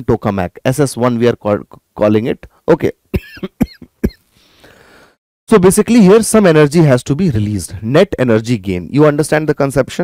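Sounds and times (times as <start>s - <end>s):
man coughing: 3.1s - 4.2s
faint breath: 4.3s - 5.2s.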